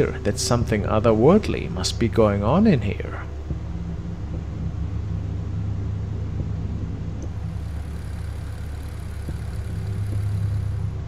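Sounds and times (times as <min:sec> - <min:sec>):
low droning hum: 0:00.0 - 0:11.0.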